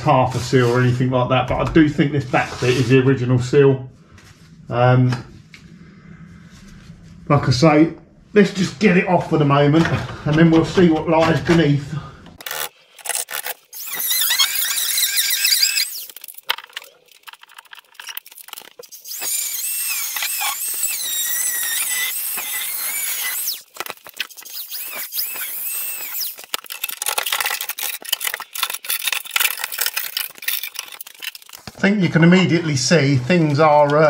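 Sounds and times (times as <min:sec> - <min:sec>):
angle grinder cutting steel: 0:12.4 - 0:16.3, 0:18.8 - 0:31.5.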